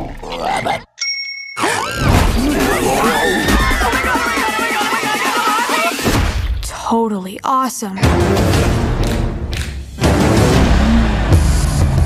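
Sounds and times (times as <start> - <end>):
bell-like ding: 1.0 - 1.8.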